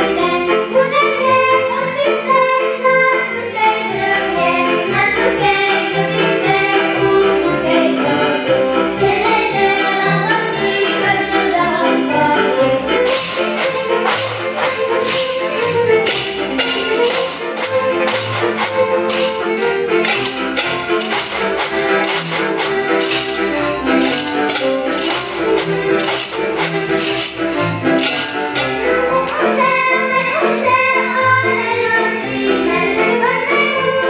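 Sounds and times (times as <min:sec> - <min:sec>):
fiddles playing folk music: 0:00.0 - 0:34.0
pot lids and washboard percussion: 0:13.0 - 0:29.4.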